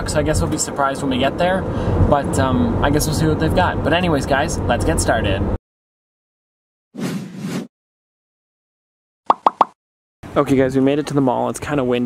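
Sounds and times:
cartoon pop sound effects: 0:09.3 - 0:09.8.

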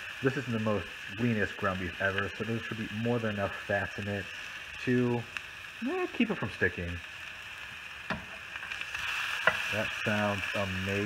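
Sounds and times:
meat sizzling in a frying pan: 0:00.0 - 0:11.0.

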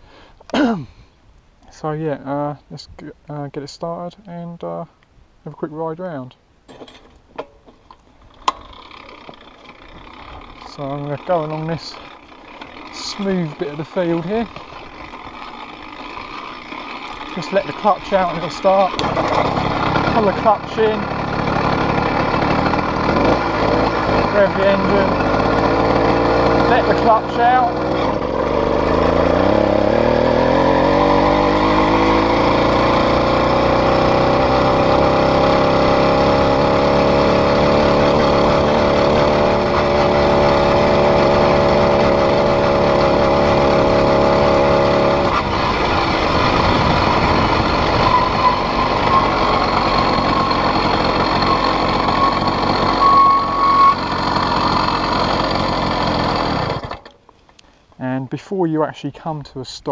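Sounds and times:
two-stroke bicycle engine: 0:07.4 - 0:57.2.

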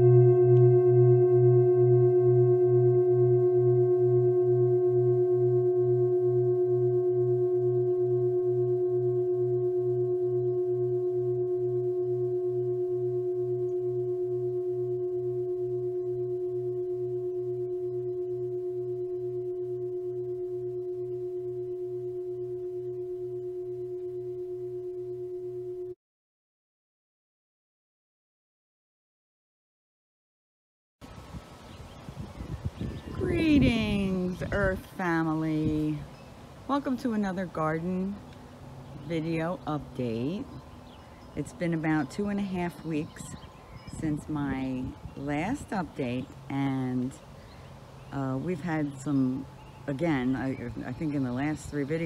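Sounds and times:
pulsing low hum: 0:00.0 - 0:26.0, 0:32.1 - 0:52.0
singing bowl ringing: 0:00.0 - 0:26.0, 0:33.0 - 0:52.0.

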